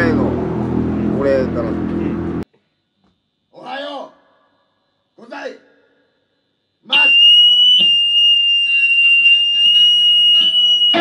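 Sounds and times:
electric guitar feedback whine: 0:00.0 - 0:02.4, 0:07.0 - 0:11.0
picked guitar notes: 0:10.4 - 0:11.0.

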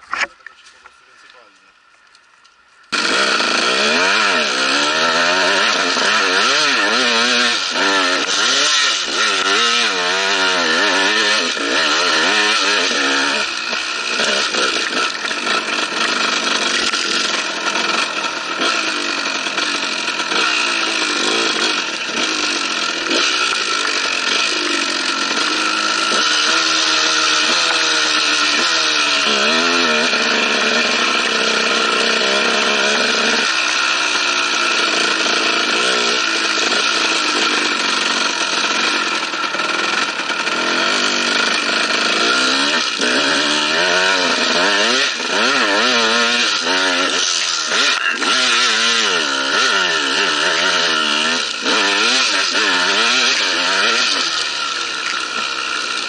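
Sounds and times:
dirt bike engine revving: 0:02.9 - 0:56.0.

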